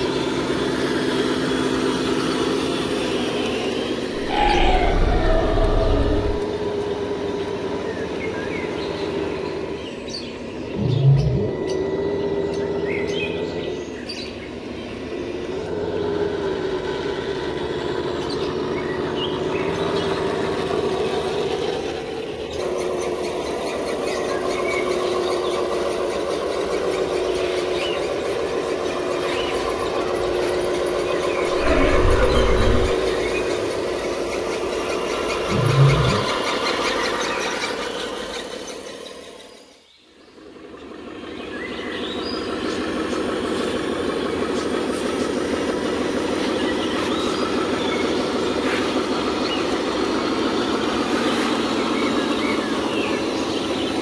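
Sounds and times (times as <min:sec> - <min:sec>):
electric motors whining: 0:01.4 - 0:18.5, 0:25.9 - 0:36.6
low thumps: 0:31.5 - 0:33.2.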